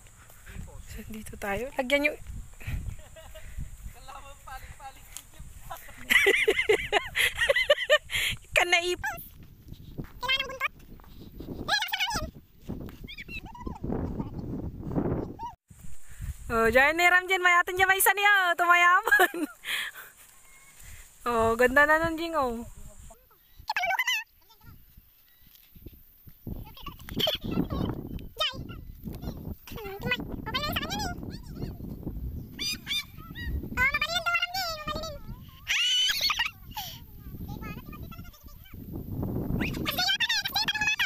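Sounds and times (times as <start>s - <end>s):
wind rumble on microphone: 0.0s - 17.3s, 20.8s - 23.2s, 24.6s - 41.0s
high wavering calls: 32.4s - 35.0s.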